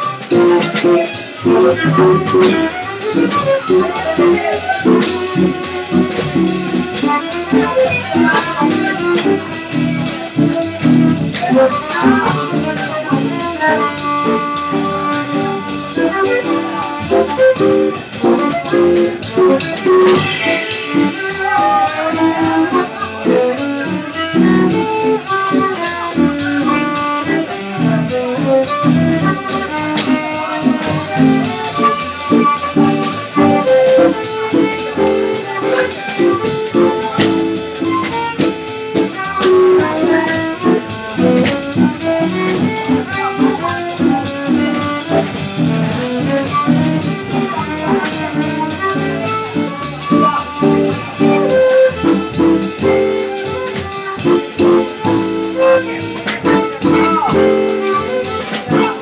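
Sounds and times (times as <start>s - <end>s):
small band playing: 0.0s - 59.0s
violin playing jazz: 0.0s - 59.0s
cymbal strokes: 17.5s - 24.4s.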